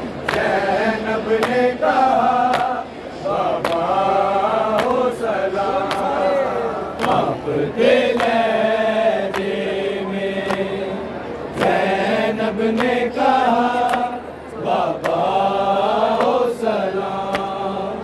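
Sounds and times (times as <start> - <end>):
men chanting a lament: 0.3 - 18.0.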